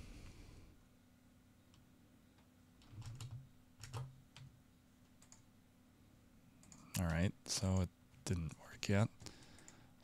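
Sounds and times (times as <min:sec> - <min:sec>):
faint steady hum: 0:00.0 - 0:10.0
computer keyboard keystrokes: 0:02.8 - 0:04.5, 0:05.2 - 0:05.4.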